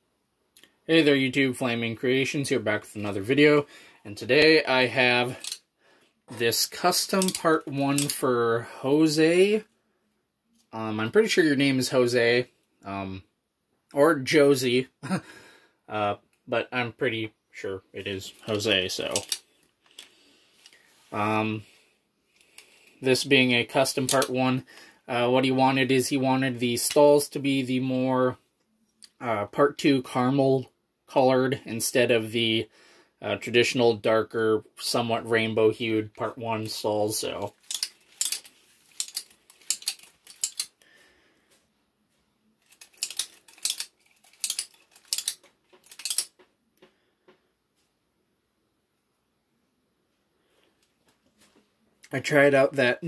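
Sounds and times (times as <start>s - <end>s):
metal blades clicking together: 5.4s - 5.6s, 7.1s - 8.2s, 19.1s - 19.4s, 37.6s - 40.7s, 42.7s - 46.3s.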